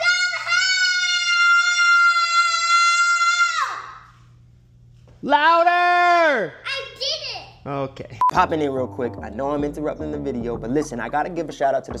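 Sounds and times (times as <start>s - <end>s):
girl screaming: 0.0s - 4.0s.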